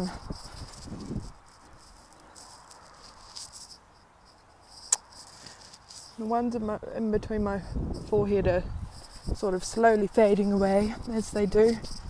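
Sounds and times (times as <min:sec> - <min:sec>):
faint insects chirping: 0:00.0 - 0:12.0
sharp click: 0:04.8 - 0:05.3.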